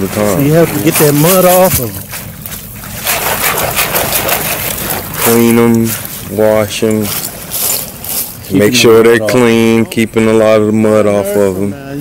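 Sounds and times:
water spraying: 0:00.0 - 0:08.8.

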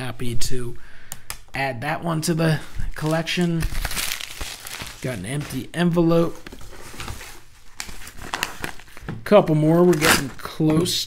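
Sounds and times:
padded paper mailer crinkling: 0:03.0 - 0:05.7.

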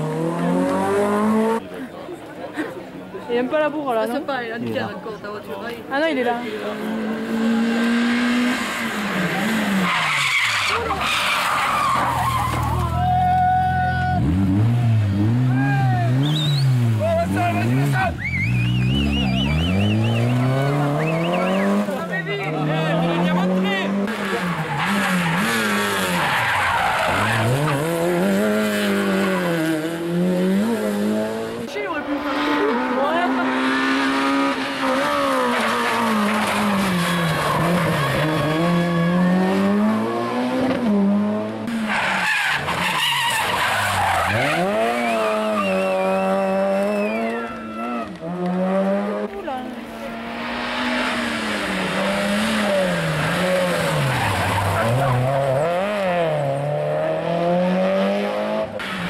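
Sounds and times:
rally car engines revving: 0:00.0 - 0:01.9, 0:03.3 - 0:59.0
tyre squeal and skidding: 0:08.6 - 0:14.3, 0:15.5 - 0:16.9, 0:17.6 - 0:22.0, 0:24.1 - 0:28.1, 0:33.7 - 0:39.6, 0:41.7 - 0:48.1, 0:50.8 - 0:56.6.

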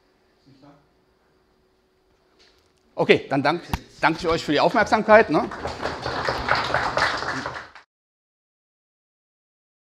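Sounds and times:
audience applauding: 0:04.8 - 0:07.9.

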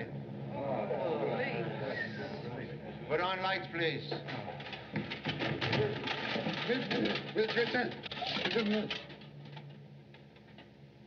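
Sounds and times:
busy rustling: 0:04.0 - 0:10.6.

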